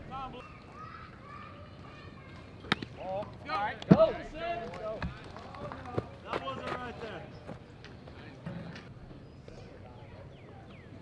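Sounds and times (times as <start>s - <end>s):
faint distant voices: 0.0s - 11.0s
low outdoor background noise: 0.0s - 11.0s.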